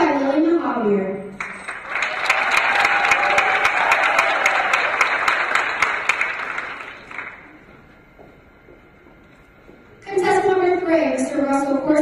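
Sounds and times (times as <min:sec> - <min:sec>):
audience applauding: 0:01.4 - 0:07.6.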